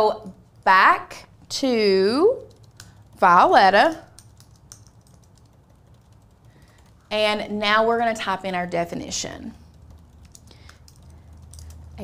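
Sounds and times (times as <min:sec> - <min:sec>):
faint keyboard typing: 0:00.4 - 0:12.0.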